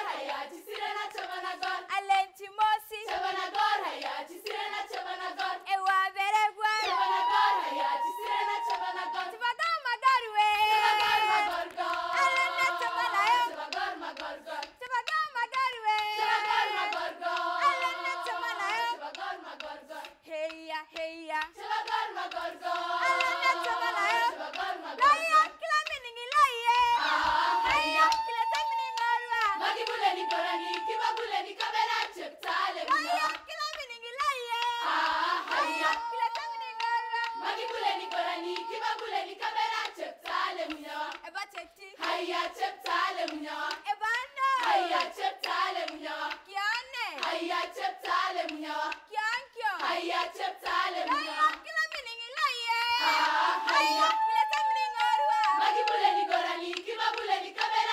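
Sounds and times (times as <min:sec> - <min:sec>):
hand claps: 0:00.0 - 0:06.0, 0:06.8 - 0:09.4, 0:10.4 - 0:49.1, 0:49.8 - 0:57.9
girls' choir singing: 0:00.0 - 0:25.6, 0:26.5 - 0:33.5, 0:34.5 - 0:41.3, 0:41.9 - 0:46.5, 0:47.1 - 0:49.1, 0:49.7 - 0:51.5, 0:52.7 - 0:57.9.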